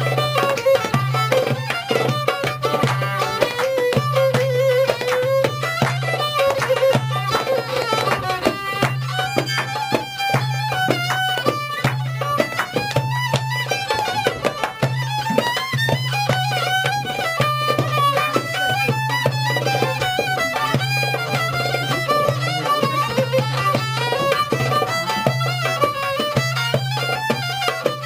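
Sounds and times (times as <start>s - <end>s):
fiddle melody: 0.0s - 28.0s.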